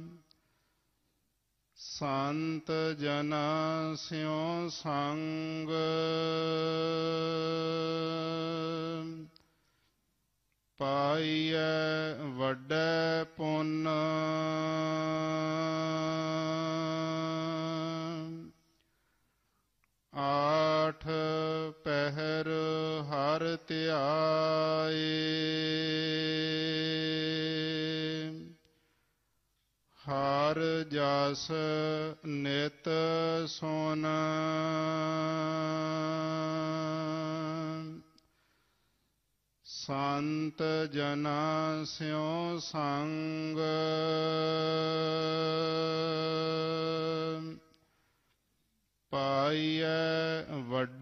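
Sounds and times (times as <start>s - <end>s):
person chanting melodically: 0.0s - 0.3s, 1.8s - 9.4s, 10.8s - 18.7s, 20.1s - 28.6s, 30.0s - 38.2s, 39.6s - 47.8s, 49.1s - 51.0s.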